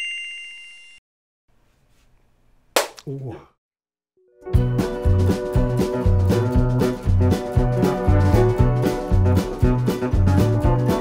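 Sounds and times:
bell-like ding: 0.0 - 1.0.

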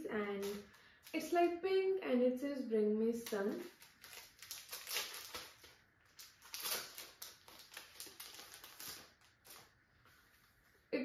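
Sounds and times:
plastic wrapper crinkling: 0.2 - 1.2, 3.2 - 9.8.

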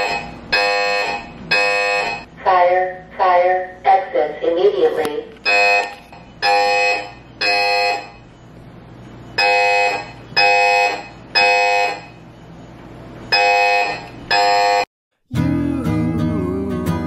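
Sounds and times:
fire alarm beeping: 0.0 - 2.3, 5.3 - 14.9.

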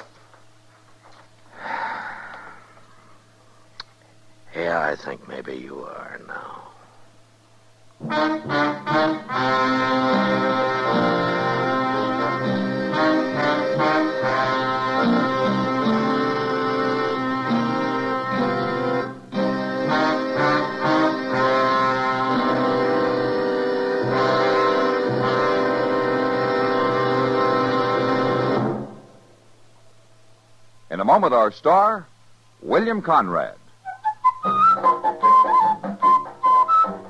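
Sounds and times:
orchestral brass music: 8.0 - 29.2.

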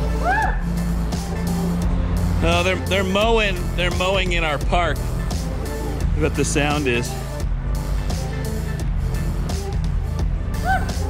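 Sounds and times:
mowing machinery drone: 0.0 - 9.7
music playing: 0.0 - 11.0.

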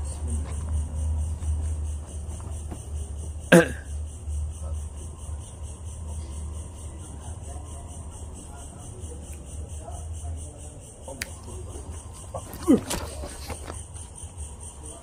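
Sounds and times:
crickets chirping: 0.0 - 15.0.

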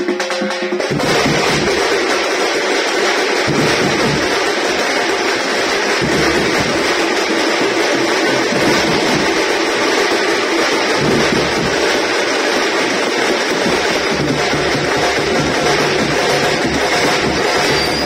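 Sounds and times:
frame drums beaten with sticks: 0.0 - 18.0
bass drum: 0.9 - 1.8, 3.4 - 10.0, 10.8 - 12.1, 13.0 - 18.0.

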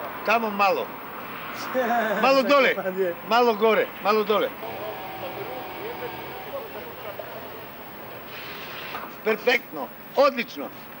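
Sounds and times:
distant traffic noise: 0.0 - 11.0
faint distant voices: 0.0 - 11.0
faint hum: 3.9 - 10.2.

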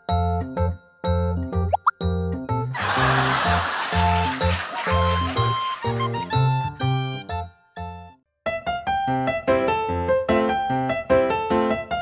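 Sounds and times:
light bouncy background music: 0.0 - 12.0.

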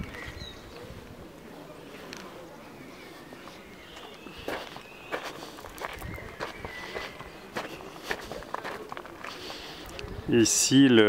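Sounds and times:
footsteps on gravel: 3.4 - 9.9.

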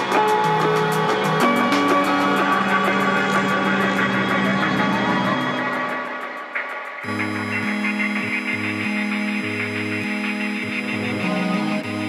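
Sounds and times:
high ticking beat: 0.0 - 12.0.

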